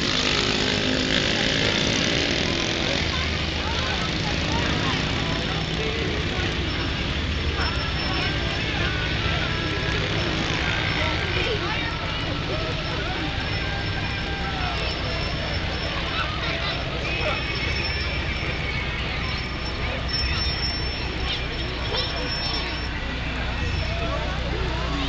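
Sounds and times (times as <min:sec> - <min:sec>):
crowd chatter: 0:00.0 - 0:25.0.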